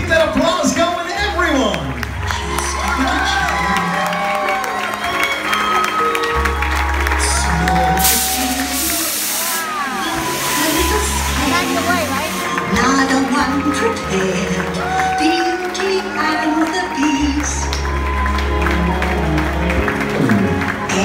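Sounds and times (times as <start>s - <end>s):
crowd applauding and cheering: 0.0s - 21.0s
music playing: 0.0s - 21.0s
fog jets hissing: 7.8s - 12.7s.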